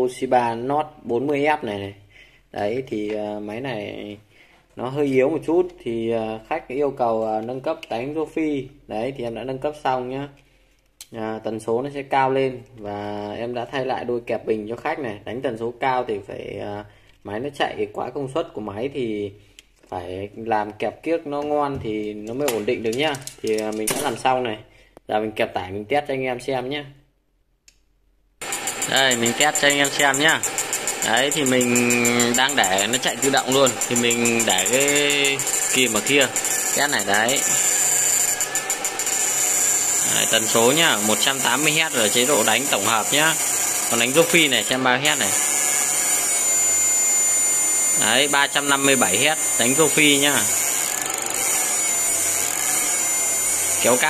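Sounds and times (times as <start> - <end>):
fast ticking pulses: 28.4 - 54.0
inverter high whine: 28.4 - 54.0
steady rasping buzz: 28.4 - 54.0.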